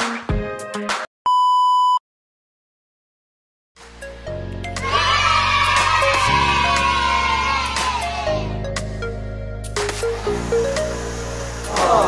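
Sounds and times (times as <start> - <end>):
high electronic beep: 1.3 - 2.0.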